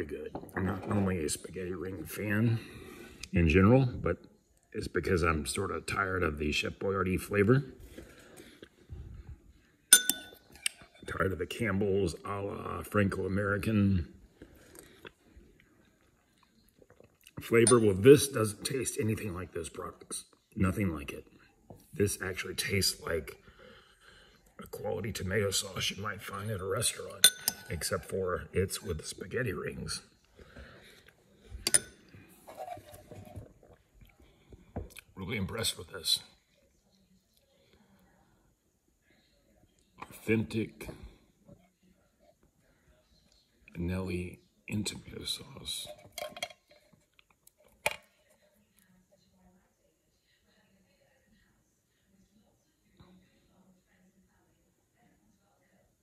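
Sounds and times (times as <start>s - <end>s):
metal spoon clinking ceramic bowl: 9.9s - 11.0s, 17.6s - 18.0s, 27.2s - 27.8s, 31.6s - 32.7s
faint handling sounds: 30.0s - 35.1s.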